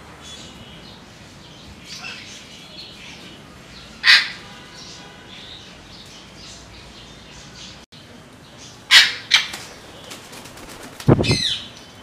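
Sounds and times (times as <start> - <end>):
parrot squawks: 4.0 - 4.4, 8.9 - 9.5
wings flapping: 9.4 - 11.5.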